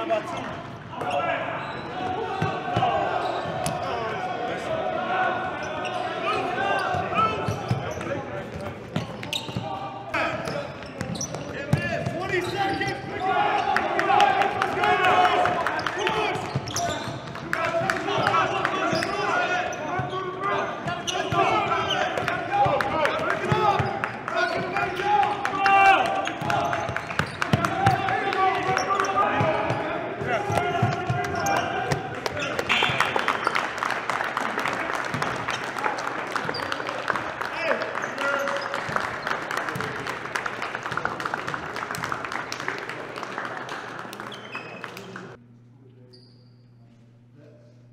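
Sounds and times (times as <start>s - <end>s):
basketballs bouncing on gym floor: 6.8s - 13.0s, 16.0s - 19.2s, 20.8s - 25.0s, 25.8s - 33.1s, 35.1s - 35.6s
hand clapping: 32.2s - 45.4s.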